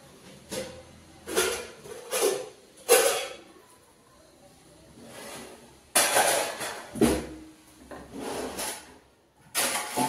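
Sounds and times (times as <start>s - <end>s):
basket drawer sliding on runners: 7.9s - 9.0s.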